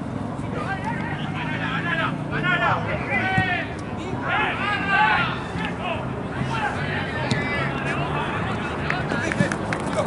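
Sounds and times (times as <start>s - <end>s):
general game noise: 0.0s - 10.0s
football players shouting: 0.5s - 10.0s.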